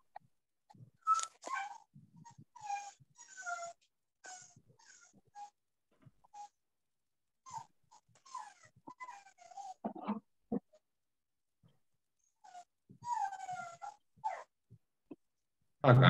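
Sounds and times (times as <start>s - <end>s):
dog whining: 1.0s - 5.6s, 6.2s - 6.6s, 7.4s - 10.8s, 12.4s - 14.6s.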